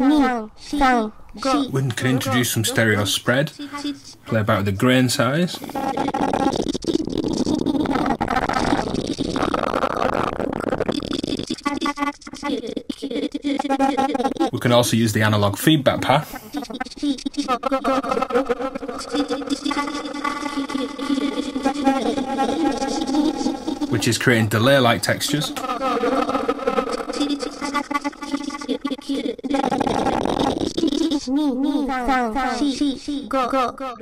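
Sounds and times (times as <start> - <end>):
granular smeared voice texture: 0.0 - 34.0.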